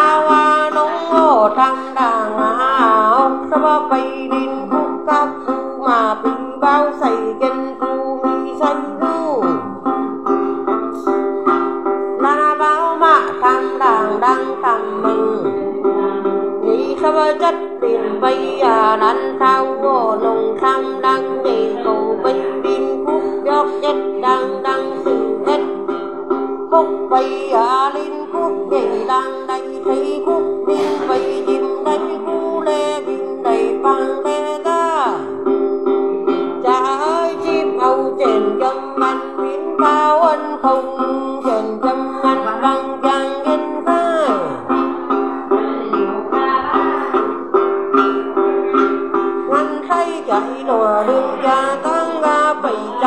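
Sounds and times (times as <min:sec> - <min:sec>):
woman chanting: 0:00.0 - 0:09.8, 0:12.2 - 0:25.8, 0:26.7 - 0:35.4, 0:36.6 - 0:44.7, 0:45.5 - 0:47.4, 0:49.5 - 0:53.0
plucked lute: 0:00.0 - 0:53.0.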